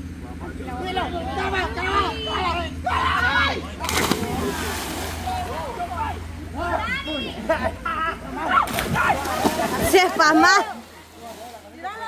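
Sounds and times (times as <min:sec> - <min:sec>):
people calling out: 0:00.4 - 0:12.0
splash in water: 0:03.8 - 0:05.4, 0:08.7 - 0:10.2.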